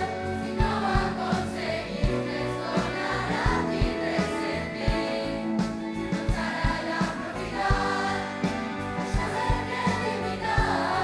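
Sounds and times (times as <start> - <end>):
choir singing pop song: 0.0 - 11.0.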